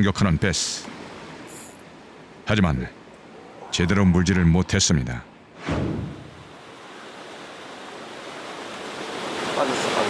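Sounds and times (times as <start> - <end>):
wind: 0.0 - 10.0
fast-flowing river rushing: 6.4 - 10.0.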